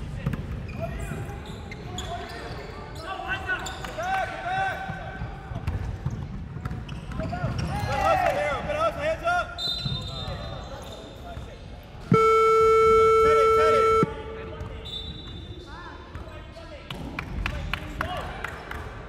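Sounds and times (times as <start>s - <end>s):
scoreboard buzzer: 12.1s - 14.4s.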